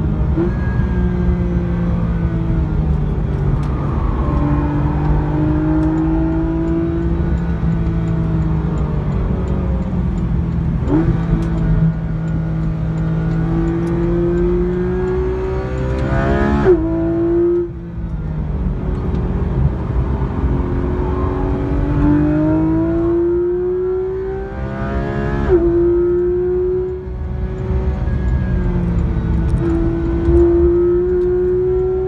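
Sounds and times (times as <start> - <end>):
car engine revving through gears: 0.2 - 32.0.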